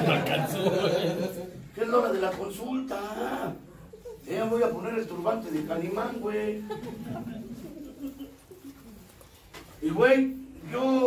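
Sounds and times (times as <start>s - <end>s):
man talking: 1.7s - 6.9s, 9.8s - 11.0s.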